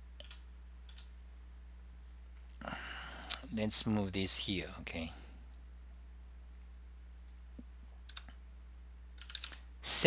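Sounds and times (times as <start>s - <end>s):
low steady hum: 0.0s - 10.0s
computer keys clicking: 0.2s - 1.1s, 8.0s - 8.4s, 9.2s - 9.7s.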